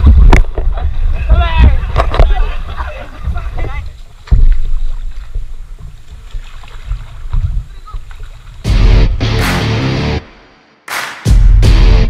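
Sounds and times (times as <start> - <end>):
wind and water rumble: 0.0 - 9.3.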